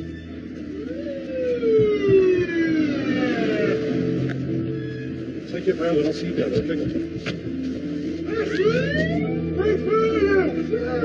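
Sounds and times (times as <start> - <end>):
emergency vehicle siren wailing: 0.0 - 5.7, 8.0 - 11.0.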